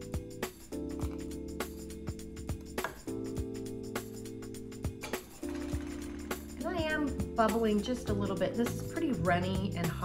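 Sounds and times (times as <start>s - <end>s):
background music with held chords: 0.0s - 10.0s.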